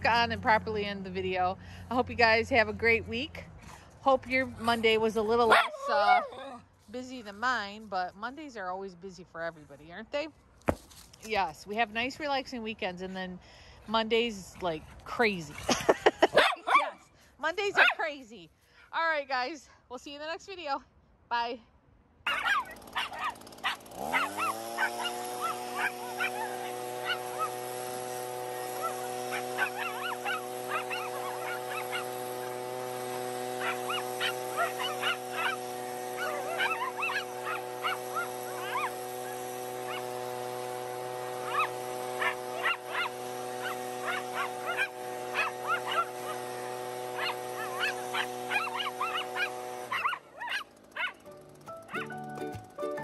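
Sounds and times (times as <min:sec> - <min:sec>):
leaf blower whine: 0:00.0 - 0:08.3, 0:14.9 - 0:16.8, 0:22.3 - 0:53.0
dogs barking and yipping: 0:05.4 - 0:06.7, 0:16.0 - 0:17.0, 0:17.7 - 0:18.1, 0:22.3 - 0:52.4.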